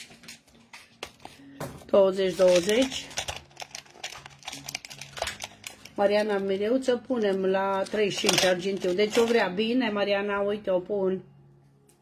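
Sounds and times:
voice: 2.0 - 3.1, 6.0 - 11.2.

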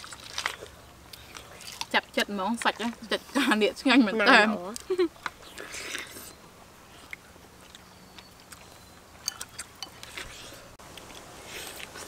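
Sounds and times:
mouth clicks while chewing: 7.0 - 12.0.

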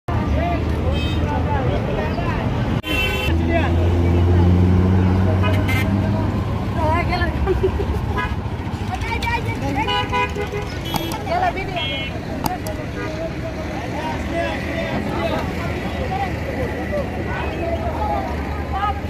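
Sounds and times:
roadside traffic: 0.0 - 19.0
vehicle horn toot: 2.8 - 3.4, 5.4 - 6.0, 9.8 - 12.2
people talking: 8.8 - 19.0.

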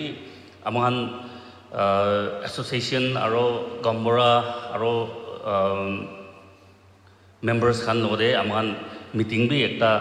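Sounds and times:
man speaking into a microphone: 0.0 - 6.6, 7.2 - 10.0.

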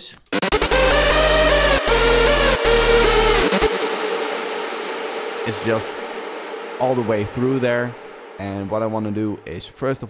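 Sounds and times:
synth lead with reverb and delay: 0.3 - 9.5
low bass: 0.4 - 9.2.

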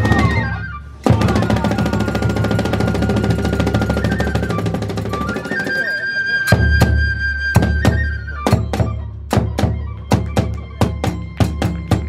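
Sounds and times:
drum beats: 0.0 - 12.0
held flute note: 0.0 - 12.0.

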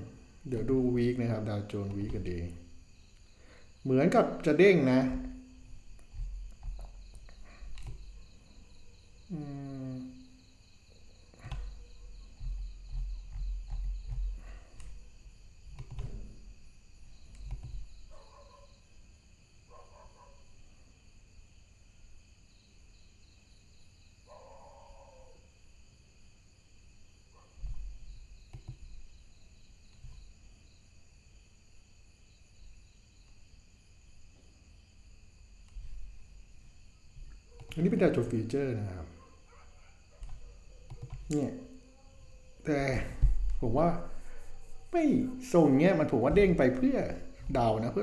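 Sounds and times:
faint cricket chirping: 0.0 - 48.0
man humming: 9.3 - 10.3.

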